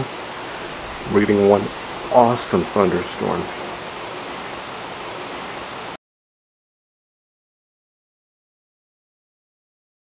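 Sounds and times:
rain hissing: 0.0 - 6.0.

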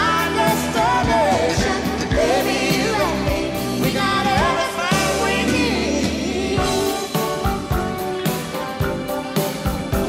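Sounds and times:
country ballad with singer and band: 0.0 - 7.7.

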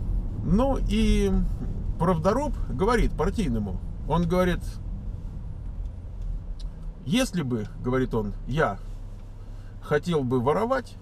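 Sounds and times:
car road and engine rumble: 0.0 - 11.0
faint ticks: 5.6 - 6.9.

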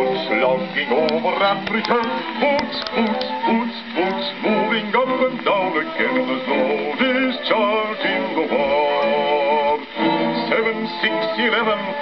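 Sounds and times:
bass singer with orchestra: 0.0 - 12.0
old gramophone record playing: 0.0 - 12.0.

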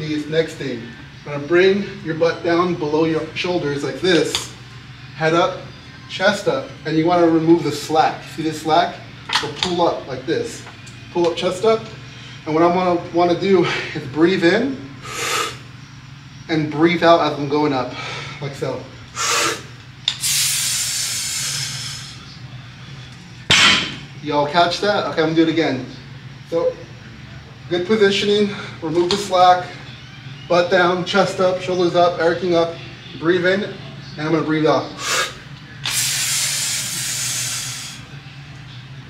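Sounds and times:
long hissing breath out: 15.0 - 15.6, 19.2 - 22.3, 35.0 - 38.1.

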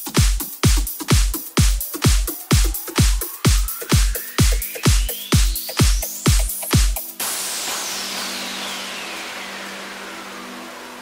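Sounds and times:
synthesized white-noise sweep: 0.5 - 11.0.

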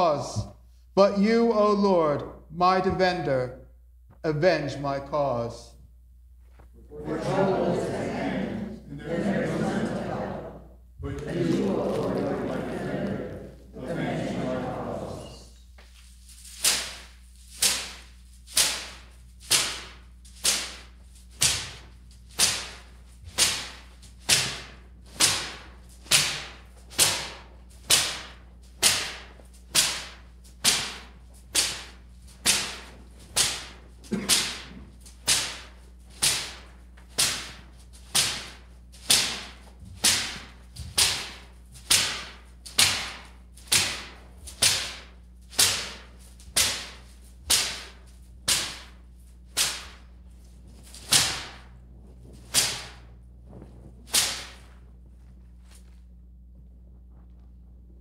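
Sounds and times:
palm fronds swishing across stone: 15.8 - 33.8, 40.4 - 56.2.

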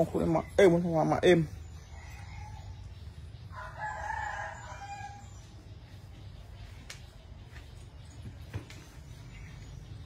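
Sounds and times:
rooster crowing: 1.9 - 5.4.

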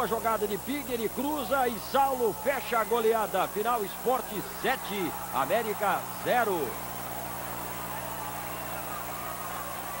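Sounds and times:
faint stadium crowd noise: 0.0 - 10.0
low electrical hum: 0.0 - 10.0
tape hiss: 0.0 - 10.0.

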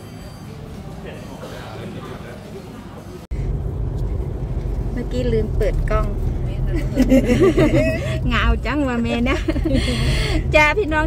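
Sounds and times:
car road rumble: 3.3 - 11.0.

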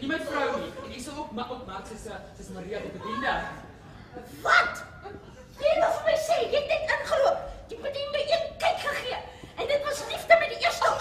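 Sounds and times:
actors speaking: 0.0 - 11.0.

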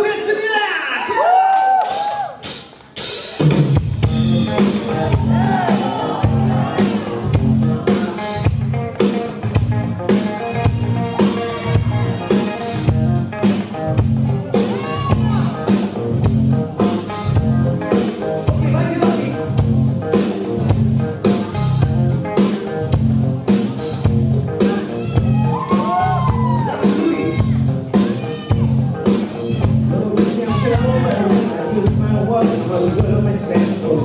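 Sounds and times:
live band playing: 1.9 - 34.0
steady drum beat: 1.9 - 34.0.

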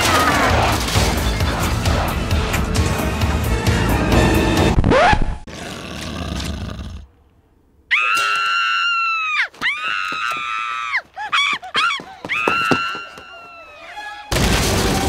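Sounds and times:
animated film soundtrack: 0.0 - 7.0
cartoon boy screaming: 7.9 - 14.0.

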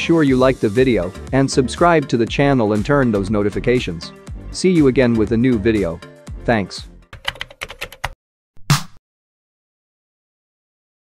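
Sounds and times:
keyboard typing clicks: 7.2 - 8.2.

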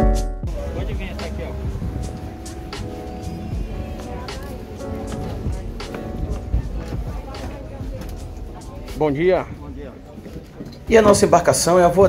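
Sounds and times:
indistinct voices: 0.5 - 12.0.

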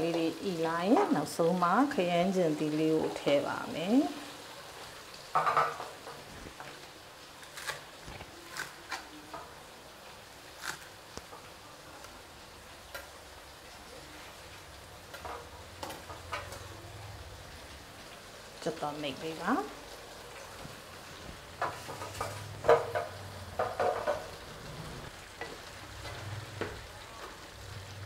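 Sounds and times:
vegetables sizzling in a pan: 0.0 - 28.0.

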